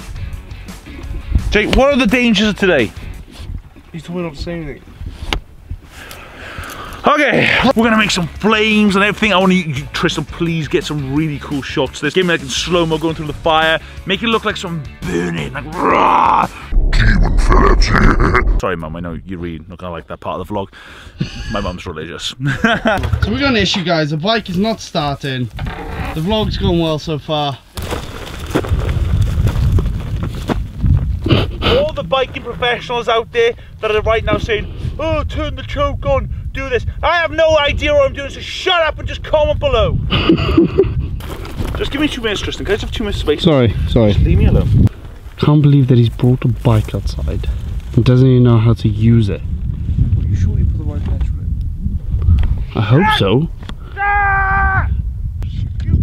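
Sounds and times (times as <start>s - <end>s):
wind rumbling on microphone: 0.9s - 8.3s, 16.7s - 19.8s, 25.5s - 56.0s.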